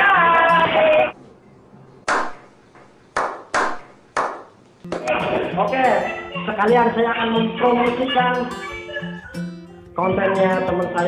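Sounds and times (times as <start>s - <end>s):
sharp hand claps with echo: 2.1s - 5.2s.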